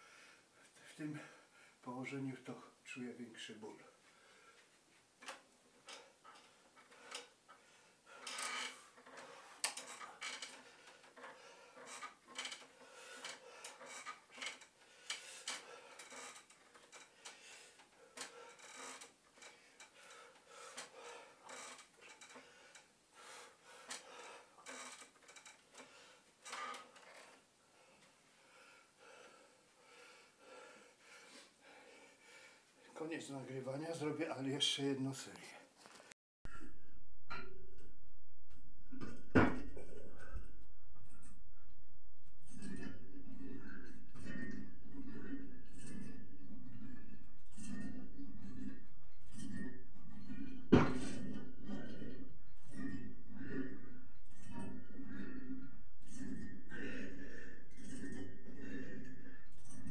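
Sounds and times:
faint breaths: 3.8 - 4.8, 27.7 - 32.9, 35.5 - 59.9.

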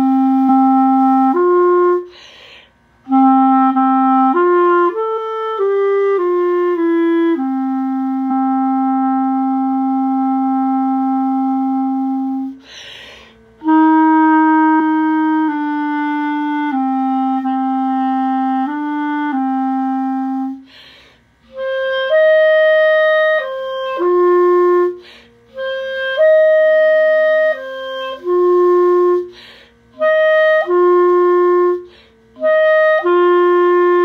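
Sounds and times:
solo clarinet slow melody: 0.0 - 34.0.

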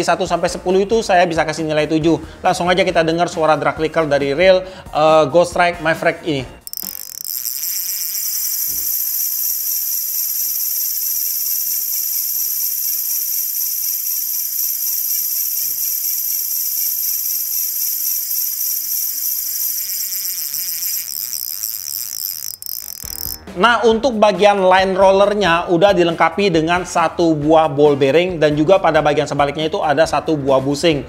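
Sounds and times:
fishing reel drag clicking: 6.6 - 23.5.

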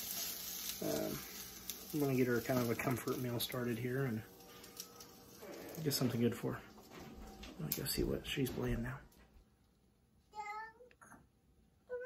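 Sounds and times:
toddler calling a note: 10.3 - 11.2.

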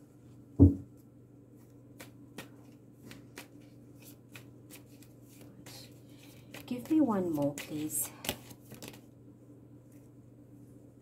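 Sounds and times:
cards being shuffled: 1.6 - 9.1.

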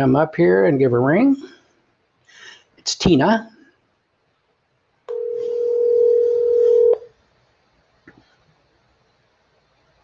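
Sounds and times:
telephone ringback tone: 5.1 - 7.1.

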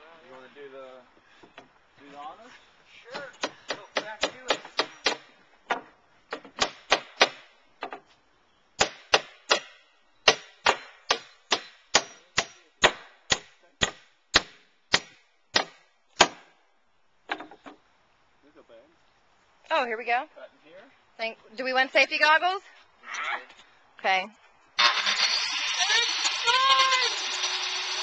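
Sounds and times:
hammer striking wooden board: 8.8 - 16.4.

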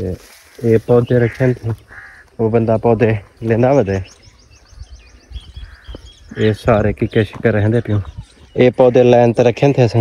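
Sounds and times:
bird chirping rapidly: 0.9 - 10.0.

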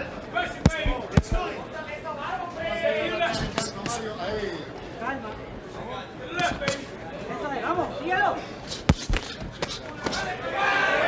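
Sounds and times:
boxing gloves smacking: 0.6 - 1.5, 3.4 - 4.0, 6.4 - 6.9, 8.7 - 10.3.

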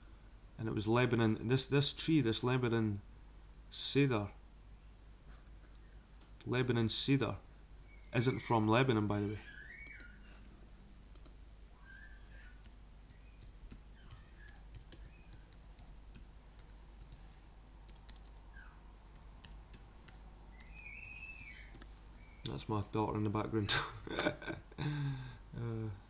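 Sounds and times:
faint keyboard typing: 11.1 - 11.4, 12.5 - 21.9.

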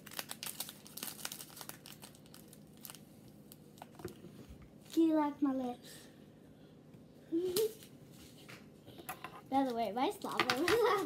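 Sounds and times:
plastic packaging crinkling: 0.0 - 4.2.

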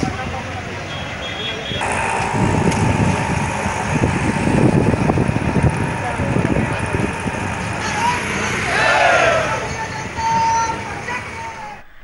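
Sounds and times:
crowd noise: 0.0 - 12.0
traffic rumble: 0.0 - 12.0.

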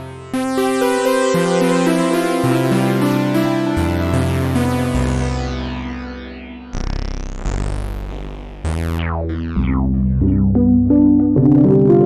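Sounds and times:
synthesizer notes: 0.0 - 12.0.

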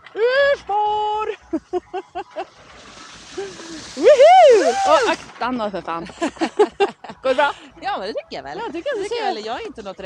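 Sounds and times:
skis scraping over snow: 2.4 - 6.5.

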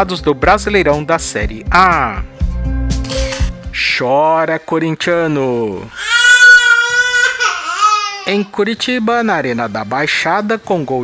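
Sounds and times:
crying wail: 5.9 - 8.3.

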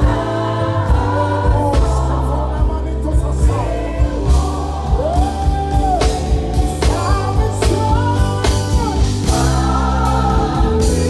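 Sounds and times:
gospel band playing: 0.0 - 11.0
singers: 0.0 - 11.0.

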